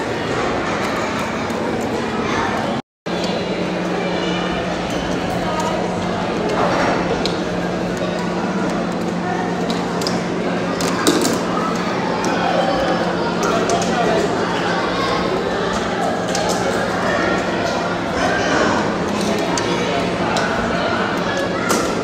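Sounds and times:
chatter of many voices: 0:00.0 - 0:22.0
steady low hum: 0:00.0 - 0:22.0.

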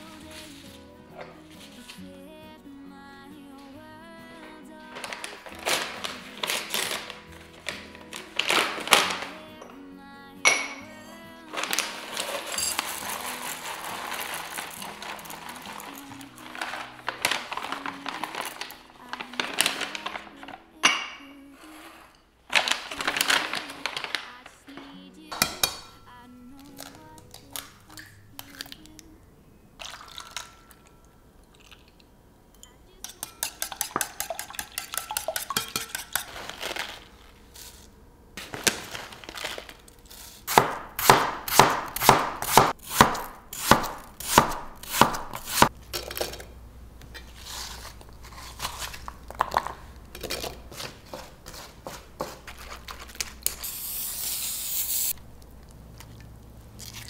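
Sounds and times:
soft background music: 0:00.0 - 0:35.8
seeds pouring into ceramic jar: 0:11.5 - 0:20.4
knife chopping on wooden board: 0:40.5 - 0:45.7.

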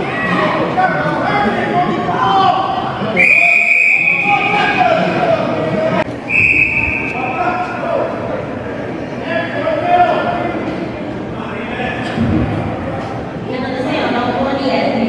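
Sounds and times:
referee's whistle blasts: 0:03.2 - 0:04.8, 0:06.3 - 0:07.4.

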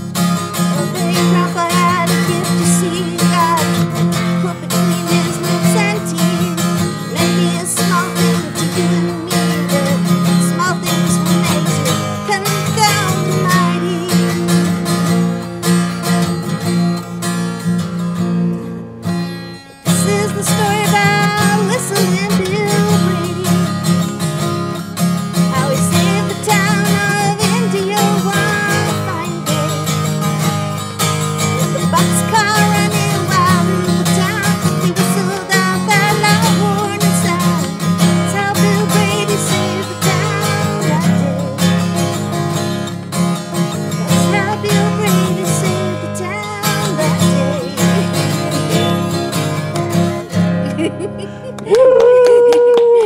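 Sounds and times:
acoustic guitar strumming: 0:00.0 - 0:51.7
woman singing: 0:00.3 - 0:16.7, 0:19.8 - 0:30.6, 0:31.3 - 0:42.8, 0:43.6 - 0:50.2.

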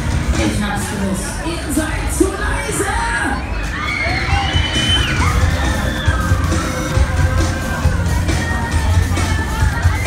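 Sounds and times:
crowd noise: 0:00.0 - 0:10.0
riders screaming: 0:03.4 - 0:07.6.

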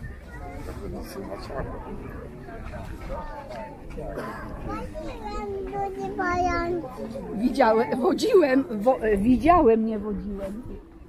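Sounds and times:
people talking: 0:00.0 - 0:10.8
children's voices: 0:03.0 - 0:07.9.

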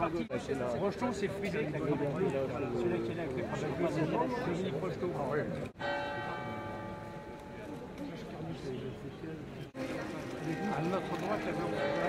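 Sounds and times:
church bell ringing: 0:05.8 - 0:08.7, 0:09.8 - 0:12.0.

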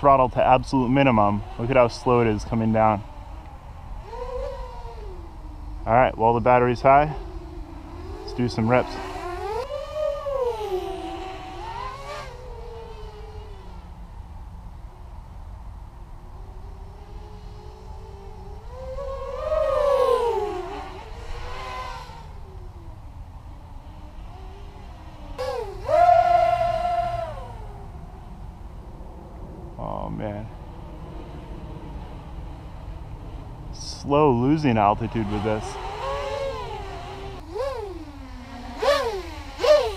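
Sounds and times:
quadcopter motors whining: 0:00.0 - 0:39.9.

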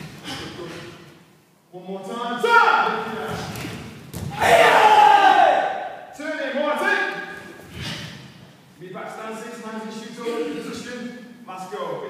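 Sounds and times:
group shout: 0:04.3 - 0:06.0.

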